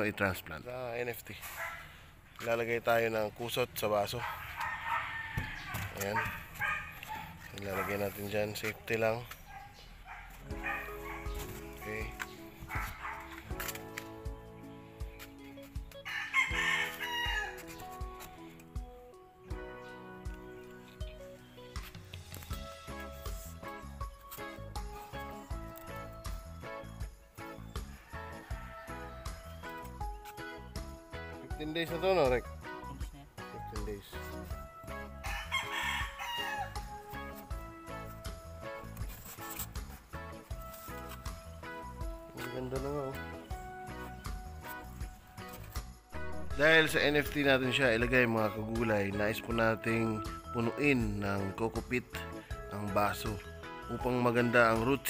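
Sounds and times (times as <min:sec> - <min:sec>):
background music: 0:00.0 - 0:55.0
chicken calls: 0:04.2 - 0:07.9
rooster crowing: 0:04.3 - 0:07.9, 0:16.0 - 0:17.6, 0:27.9 - 0:29.5, 0:35.2 - 0:36.9.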